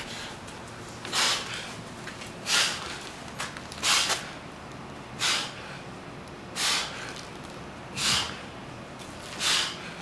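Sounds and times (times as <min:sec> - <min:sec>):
man breathing hard: 0:00.0 - 0:00.5, 0:01.1 - 0:01.8, 0:02.4 - 0:03.1, 0:05.2 - 0:05.9, 0:06.5 - 0:07.3, 0:07.9 - 0:08.6, 0:09.3 - 0:10.0.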